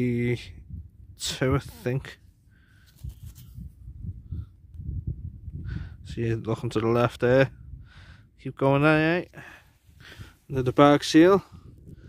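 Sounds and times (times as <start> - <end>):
wind buffeting microphone: 0.0 - 2.1, 3.0 - 8.4, 9.9 - 12.0.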